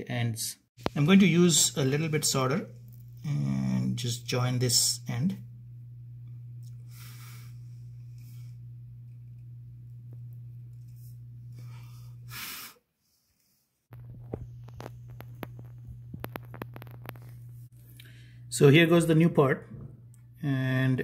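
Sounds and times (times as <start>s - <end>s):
steady low hum: 0.8s - 12.6s, 13.9s - 21.0s
faint breaths: 6.8s - 8.7s.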